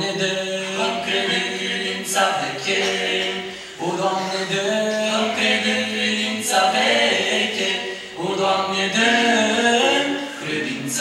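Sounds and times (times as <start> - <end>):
men singing a hymn in harmony: 0.0 - 11.0.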